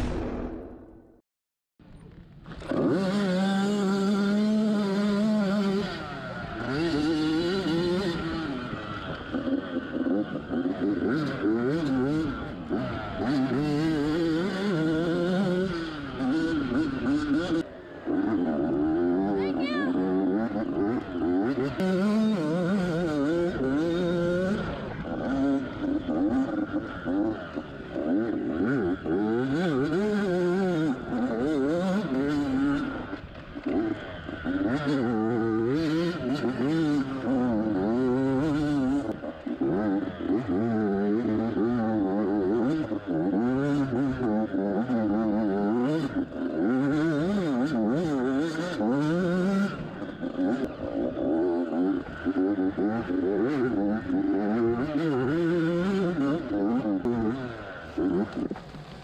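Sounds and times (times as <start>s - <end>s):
dirt bike engine revving: 2.4s - 59.0s.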